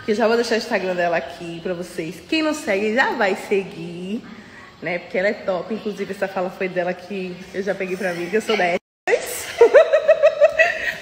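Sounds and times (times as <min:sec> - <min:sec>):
woman laughing: 0:08.1 - 0:11.0.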